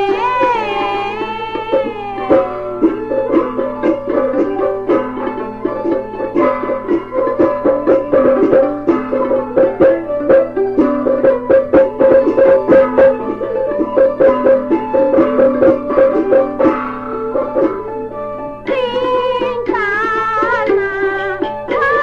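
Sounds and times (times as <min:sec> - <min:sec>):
plucked string instruments melody: 0:00.0 - 0:22.0.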